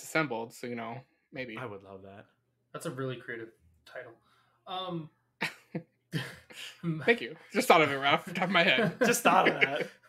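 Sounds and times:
man laughing: 0:07.8 - 0:10.0.

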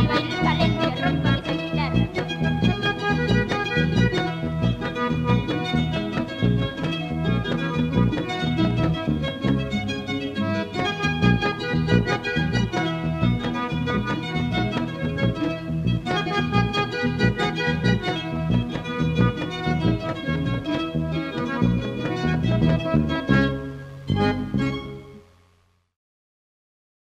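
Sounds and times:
bass notes on a steady beat: 0:00.0 - 0:25.0
accordion melody: 0:00.0 - 0:25.3
guitar: 0:00.0 - 0:25.6.

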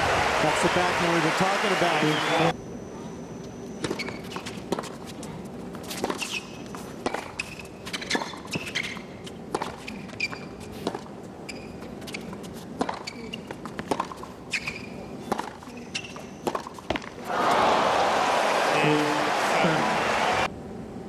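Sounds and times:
hushed crowd: 0:00.0 - 0:02.5, 0:17.2 - 0:20.5
shoes squeaking on court: 0:03.0 - 0:17.2
tennis ball struck with rackets: 0:12.8 - 0:14.6, 0:15.3 - 0:17.2.

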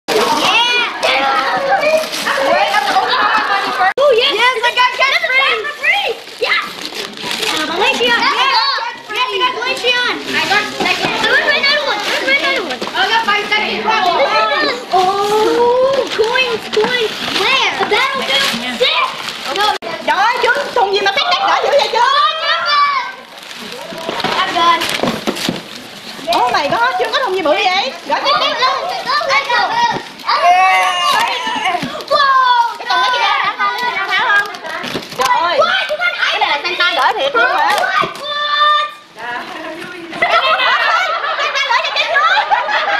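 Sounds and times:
children calling and squealing: 0:00.1 - 0:42.9.

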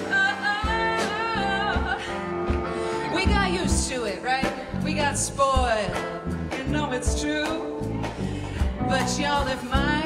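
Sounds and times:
band accompaniment: 0:00.0 - 0:10.0
woman singing into microphone: 0:00.0 - 0:10.0.

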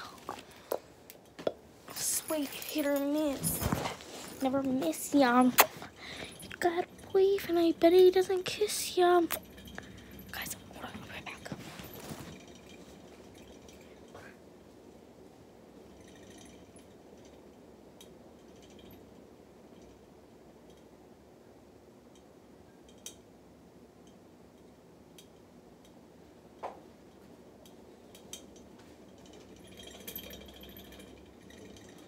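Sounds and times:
ceiling fan whirring: 0:00.0 - 0:32.0
rustling: 0:01.8 - 0:07.2, 0:09.2 - 0:14.9.

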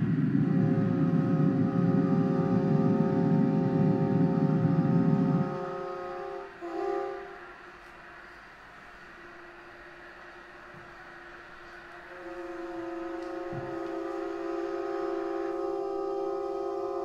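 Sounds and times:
violin sustained note: 0:12.1 - 0:17.0.

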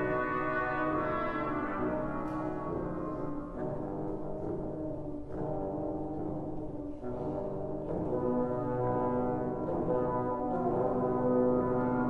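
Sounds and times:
trombone ensemble chords: 0:00.0 - 0:12.0.

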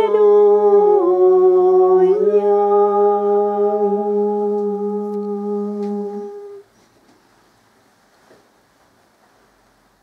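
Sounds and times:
man singing a long chant note: 0:00.0 - 0:06.6.

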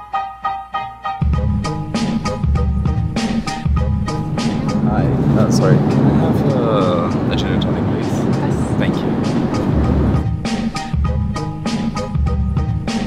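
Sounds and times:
drum beat music: 0:01.2 - 0:13.0
aircraft cabin noise: 0:02.8 - 0:10.2
indistinct voices: 0:04.2 - 0:10.2.

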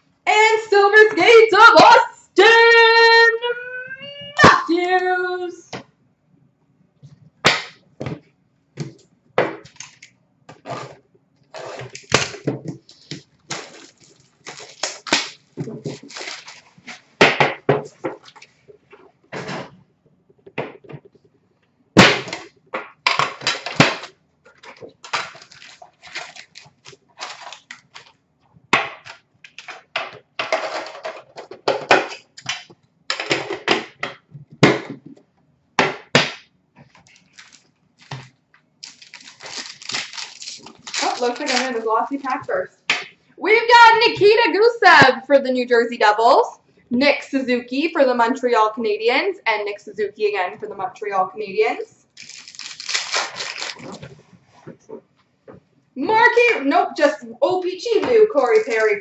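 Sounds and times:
shrink-wrap and cardboard rustling: 0:09.7 - 0:17.2, 0:23.4 - 0:28.2, 0:36.8 - 0:42.7, 0:52.2 - 0:55.0, 0:57.8 - 0:59.0.

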